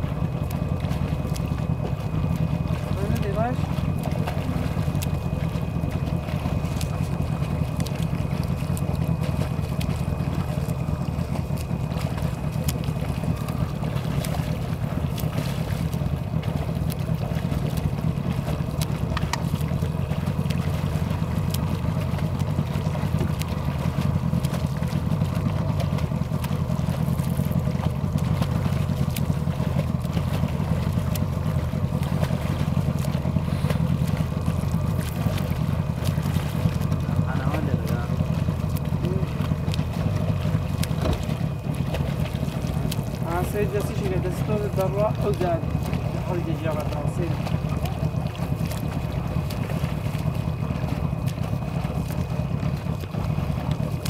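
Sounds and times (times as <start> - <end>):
boat motor humming: 0.0 - 54.0.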